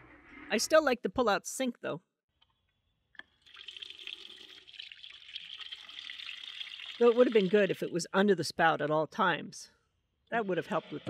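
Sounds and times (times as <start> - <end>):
water running into steel sink: 3.4 - 7.9.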